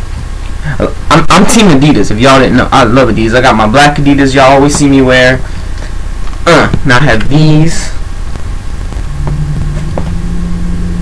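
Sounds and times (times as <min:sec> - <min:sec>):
background hiss: 0:00.0 - 0:11.0
steady low hum: 0:00.0 - 0:11.0
second low steady tone: 0:09.0 - 0:11.0.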